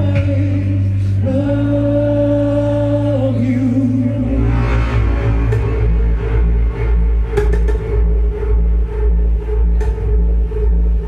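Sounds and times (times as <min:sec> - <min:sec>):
deep bass drone: 0:00.0 - 0:11.0
loud dark electronic music: 0:00.0 - 0:11.0
sharp percussion hits: 0:04.2 - 0:08.6.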